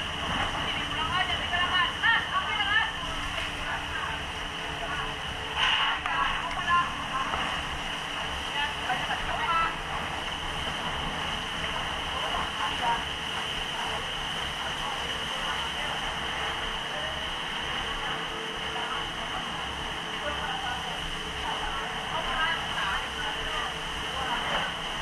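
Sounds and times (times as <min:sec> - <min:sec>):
steady rushing noise: 0:00.0 - 0:25.0.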